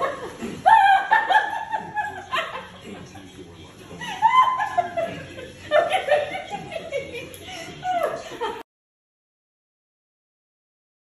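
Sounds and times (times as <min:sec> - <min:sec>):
high-pitched laughter with squeals: 0:00.0 - 0:02.3.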